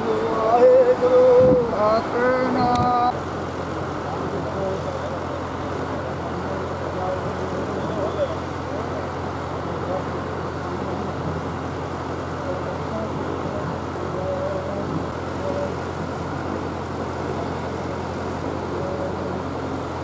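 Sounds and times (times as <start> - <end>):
faint indistinct voices: 0.0 - 20.0
pedestal fans whirring: 0.0 - 20.0.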